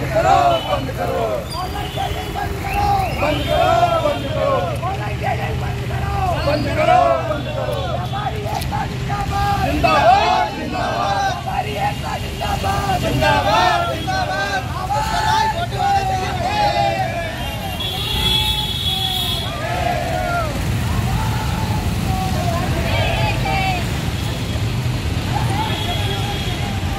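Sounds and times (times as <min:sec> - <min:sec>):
protesters chanting slogans: 0:00.0 - 0:17.8, 0:19.4 - 0:26.9
street traffic rumble: 0:00.0 - 0:26.9.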